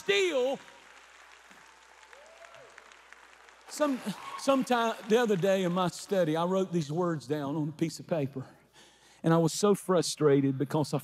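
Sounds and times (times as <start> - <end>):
soft scattered applause: 0.0 - 6.7.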